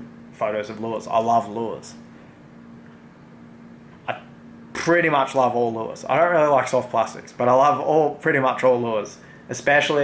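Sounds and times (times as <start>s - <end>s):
low room hum: 0.0s - 10.0s
man talking: 0.4s - 2.0s, 4.1s - 10.0s.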